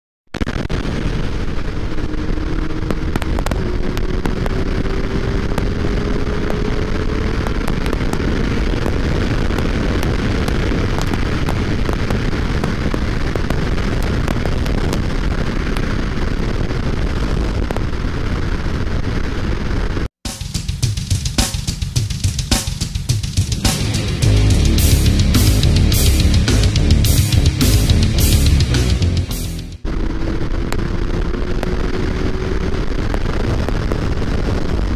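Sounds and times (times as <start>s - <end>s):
wind buffeting microphone: 0.8s - 20.0s, 29.8s - 34.9s.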